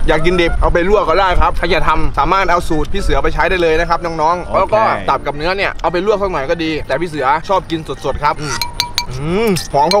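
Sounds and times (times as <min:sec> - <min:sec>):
man talking: 0:00.0 - 0:10.0
background music: 0:04.5 - 0:07.0
light clinks: 0:08.6 - 0:10.0.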